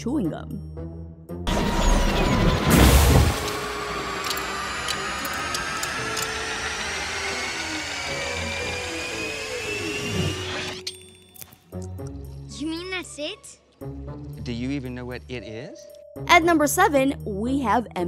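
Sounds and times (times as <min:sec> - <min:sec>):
music: 0:00.0 - 0:03.7, 0:07.9 - 0:18.0
candy machine whirring and clanking: 0:01.5 - 0:11.0.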